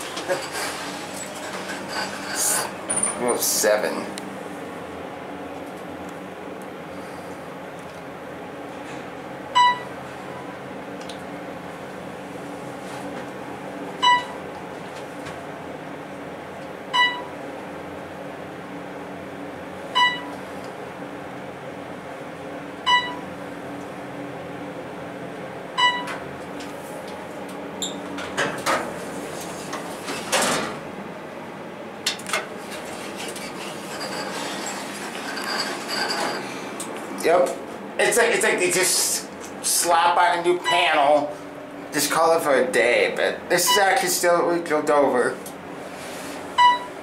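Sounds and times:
elevator doors operating: 0.0 - 4.2, 25.7 - 26.8, 27.4 - 31.0, 32.0 - 36.7
elevator hum: 0.0 - 47.0.

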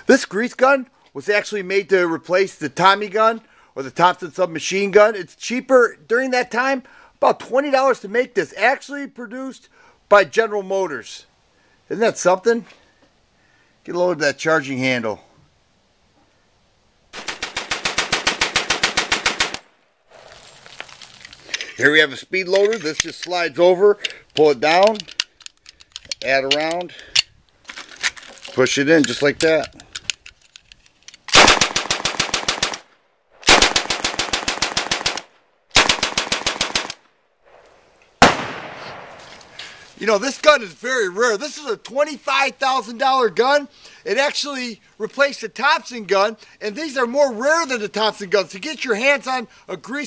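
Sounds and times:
submachine gun burst: 31.3 - 32.8
loud gunshot bang: 38.2 - 39.2.

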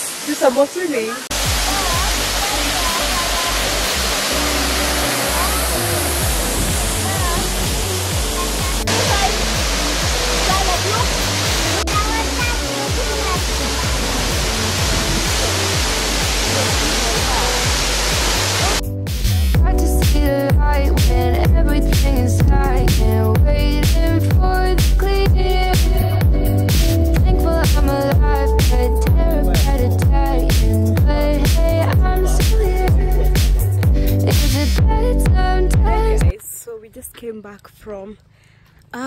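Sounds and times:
waterfall rushing: 0.0 - 18.8
music with bass line: 1.3 - 36.3.

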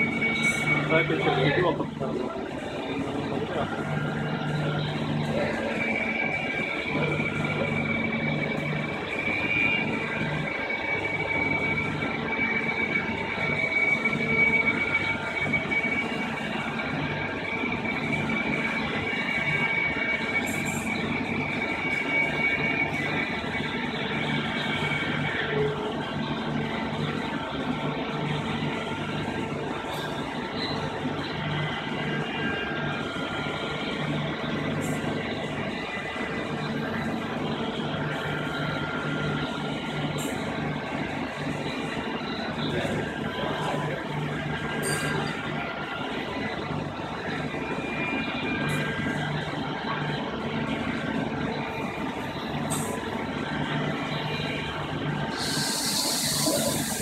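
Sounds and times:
machine high whine: 0.0 - 57.0
machine low hum: 0.0 - 57.0.

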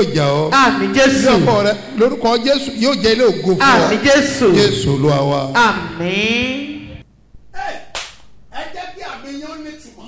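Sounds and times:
man speaking: 0.0 - 6.0.

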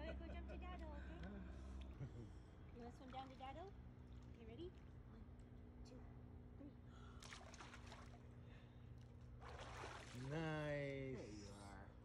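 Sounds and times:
steady low hum: 0.0 - 12.0
pool water splashing: 7.2 - 8.4, 9.3 - 11.0.

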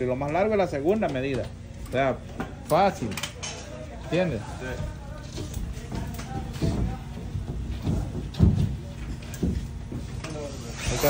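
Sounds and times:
low background voices: 0.0 - 11.0.

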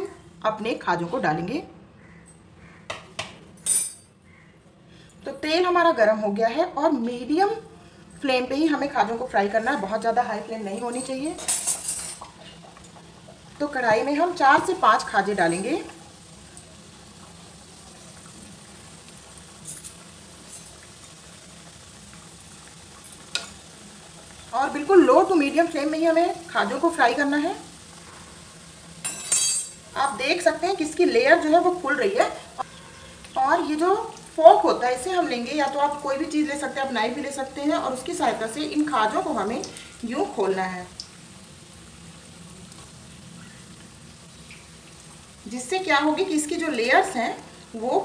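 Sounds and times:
pastries deep-frying in oil: 4.9 - 48.0
crockery and utensils clinking: 10.7 - 13.0, 29.0 - 30.2.

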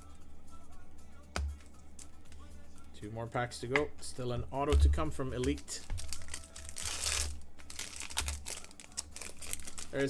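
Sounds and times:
foil wrapper crinkling and tearing: 5.4 - 10.0.

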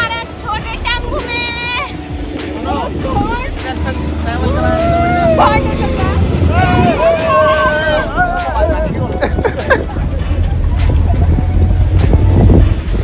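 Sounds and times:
people laughing and calling out: 0.0 - 12.0
steady low rumble: 0.0 - 13.0
long drawn-out shouts: 4.5 - 8.6.

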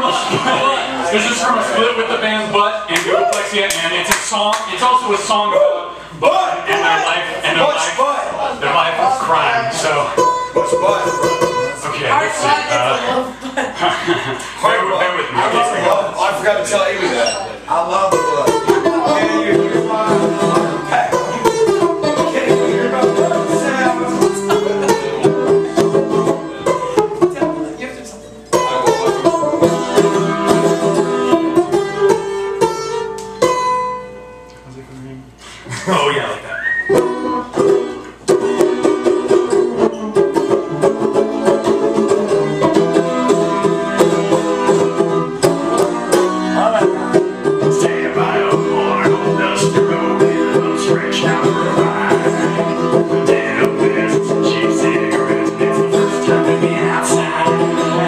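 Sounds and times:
banjo picked tune: 0.0 - 2.9, 6.3 - 13.2, 13.9 - 34.5, 36.9 - 58.0.

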